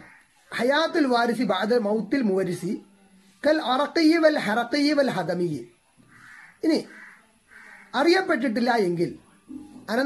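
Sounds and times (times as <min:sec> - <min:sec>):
faint bird calls: 0:00.0 - 0:00.9, 0:06.0 - 0:08.3.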